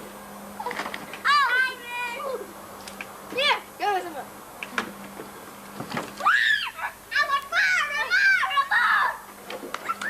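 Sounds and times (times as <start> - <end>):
children shrieking at play: 6.2 - 9.2.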